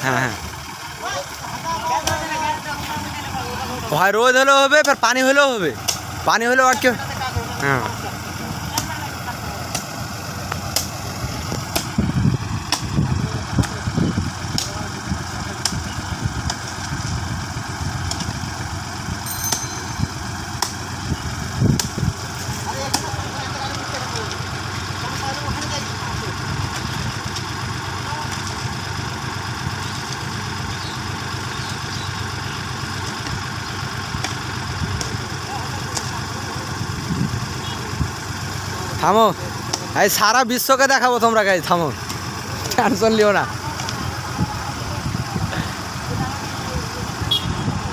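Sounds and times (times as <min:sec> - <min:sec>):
tractor diesel engine idling: 0:00.0 - 0:47.9.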